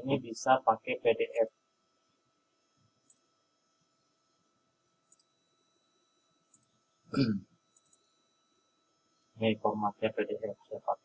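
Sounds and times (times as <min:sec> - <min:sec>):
man murmuring: 0:00.0 - 0:01.4, 0:07.2 - 0:07.4
computer mouse clicks: 0:03.0 - 0:03.3, 0:05.0 - 0:05.3, 0:06.5 - 0:06.8, 0:07.7 - 0:08.1.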